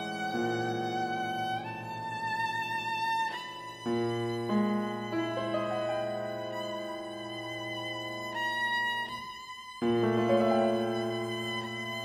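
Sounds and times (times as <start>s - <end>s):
piano: 0.0s - 12.0s
viola: 0.0s - 12.0s.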